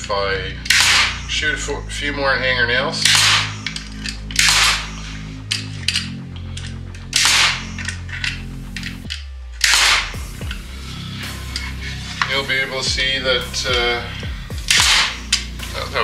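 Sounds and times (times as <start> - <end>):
nail gun shots: 0.6 - 1.4, 3.0 - 5.0, 7.1 - 8.0, 9.6 - 10.2, 14.6 - 15.5.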